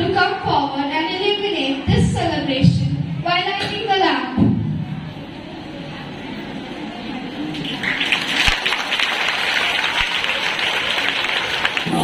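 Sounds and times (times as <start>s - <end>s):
children applauding: 7.5s - 12.0s.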